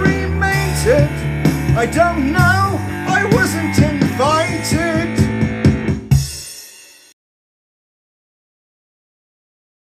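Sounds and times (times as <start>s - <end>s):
drum machine hits: 0.0s - 7.2s
rock song: 0.0s - 7.2s.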